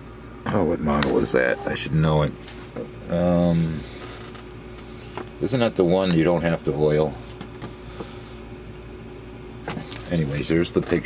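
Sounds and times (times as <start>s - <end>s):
low electrical hum: 0.0s - 11.0s
thin steady whine: 0.0s - 11.0s.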